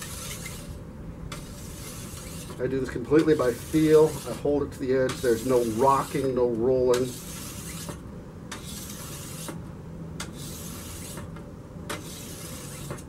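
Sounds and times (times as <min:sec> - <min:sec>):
whetstone scraping on steel: 0:00.0 - 0:02.6, 0:05.1 - 0:09.6, 0:10.2 - 0:11.3, 0:11.9 - 0:13.0.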